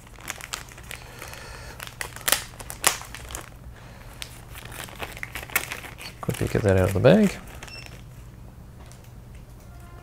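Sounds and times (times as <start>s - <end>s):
sharp plastic crackles: 0.0s - 8.1s
plastic bag crinkling: 0.0s - 8.2s.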